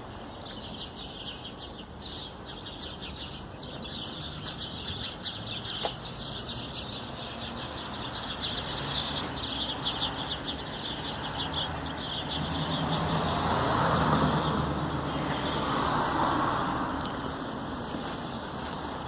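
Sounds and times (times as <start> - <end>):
cars passing: 0.0 - 19.0
small birds chirping: 0.0 - 19.0.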